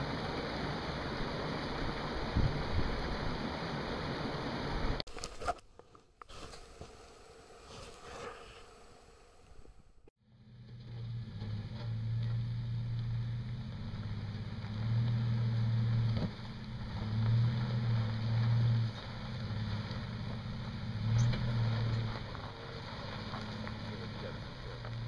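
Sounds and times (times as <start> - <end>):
engine running at low revs: 0.0 - 5.0, 10.2 - 25.0.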